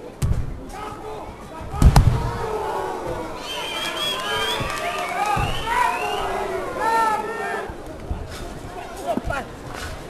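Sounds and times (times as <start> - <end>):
crowd shouting: 0.8 - 7.8.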